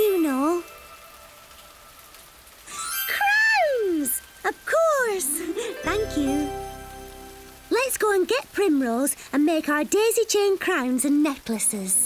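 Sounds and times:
steady rain falling: 0.0 - 12.0.

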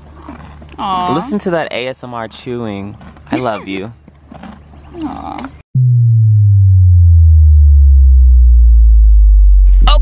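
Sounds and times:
deep synthesized tone sliding down: 5.7 - 10.0.

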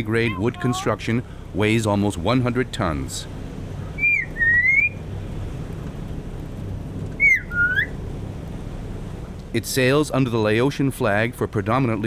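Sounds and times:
steady low hum: 0.0 - 12.0
bird whistling: 4.0 - 5.0, 7.2 - 8.0.

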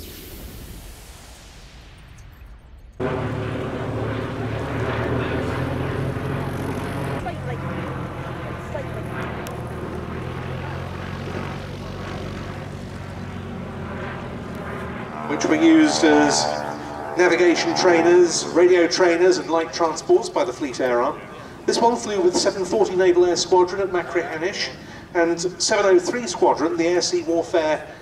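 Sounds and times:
propeller planes droning: 2.2 - 28.0.

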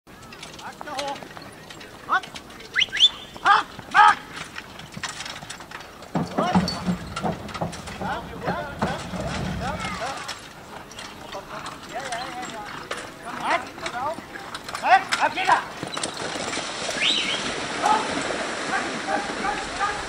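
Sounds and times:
horse hooves clopping on wooden bridge: 0.1 - 20.0
people talking: 6.2 - 15.7, 17.8 - 20.0.

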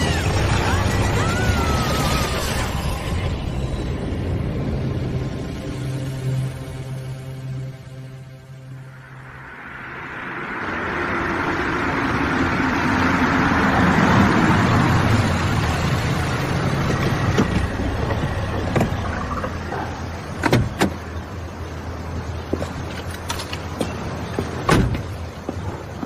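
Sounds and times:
car engine rumble: 0.0 - 26.0
car door opening clicks: 20.4 - 21.0.

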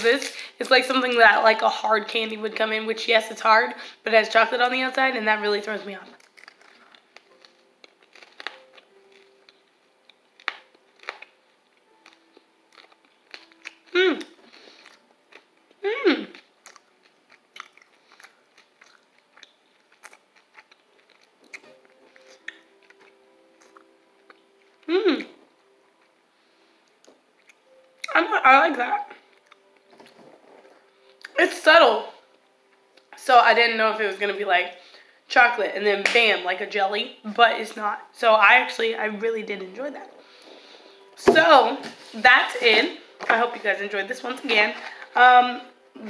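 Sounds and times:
faint chewing: 6.0 - 26.1, 26.8 - 28.2, 29.0 - 31.4
hard candy crunching in mouth: 6.1 - 15.5, 16.3 - 24.8.

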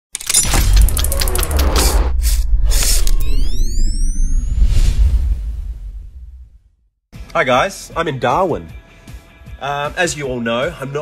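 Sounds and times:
tones gliding upward: 0.4 - 6.4.

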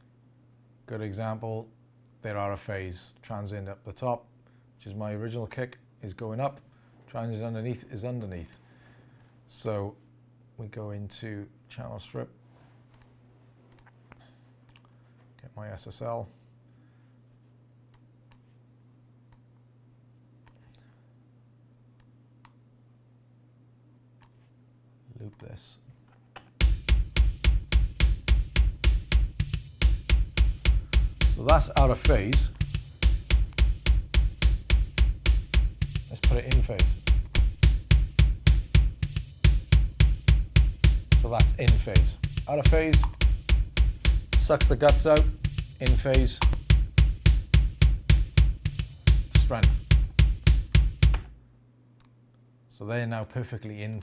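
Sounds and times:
rock drum kit kick and snare: 26.6 - 51.4.

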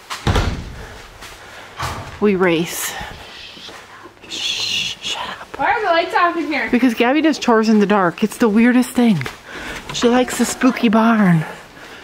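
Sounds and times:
door banging shut: 0.0 - 1.2, 1.8 - 3.1.

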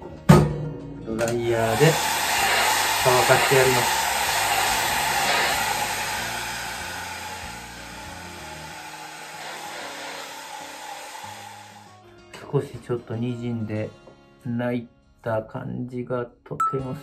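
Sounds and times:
background music: 0.0 - 17.0
hair dryer blowing: 1.3 - 11.9.

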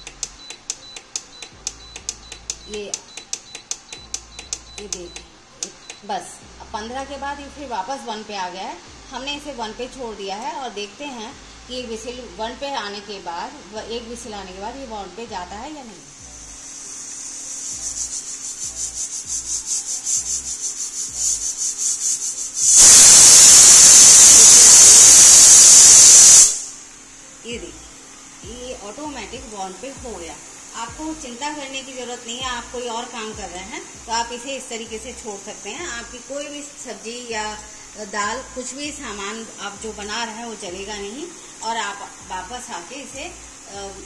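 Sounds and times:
button clicks with high beeps: 0.0 - 6.1
pressure cooker steam hiss: 0.0 - 6.2, 15.6 - 44.0
pressure cooker whistle: 16.4 - 26.8.

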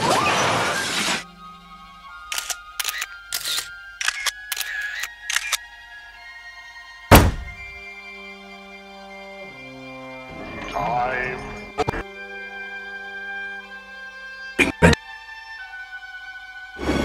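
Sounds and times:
music with sustained chords: 0.8 - 17.0
camera shutter clicks: 2.3 - 5.6
loud heavy thud: 7.1 - 7.7.

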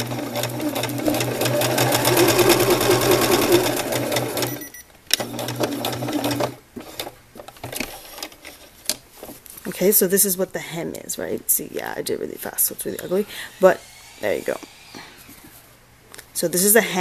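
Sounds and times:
sewing machine stitching: 0.0 - 4.6, 5.2 - 7.1.

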